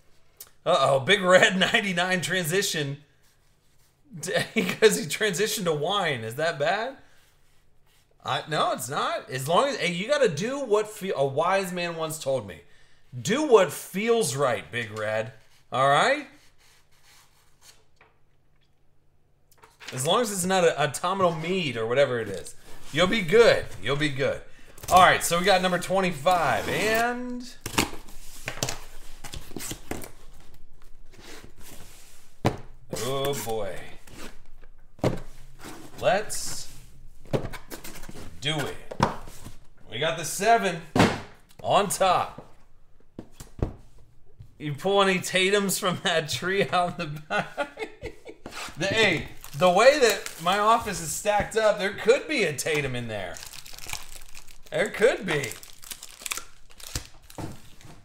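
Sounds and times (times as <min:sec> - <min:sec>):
cardboard and tape tearing: 0:26.3 - 0:28.6, 0:48.5 - 0:51.1, 0:52.8 - 0:57.8.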